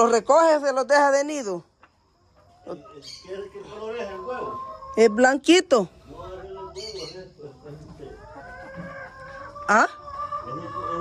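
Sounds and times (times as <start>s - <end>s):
hens calling: 0.0s - 11.0s.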